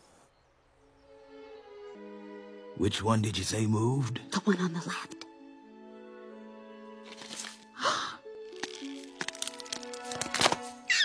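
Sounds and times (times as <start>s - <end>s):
soft music with held notes: 0.4s - 10.9s
eggshells cracking: 7.1s - 7.7s, 8.3s - 10.9s.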